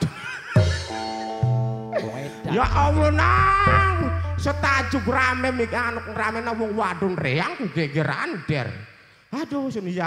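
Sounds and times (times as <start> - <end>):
keyboard chord over bass: 0.6 - 7.4
low hit: 2.6 - 7.4.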